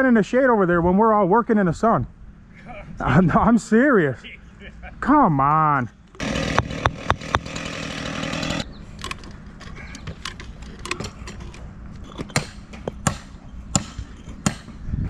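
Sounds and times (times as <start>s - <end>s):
small engine tool running: 6.2s - 8.7s.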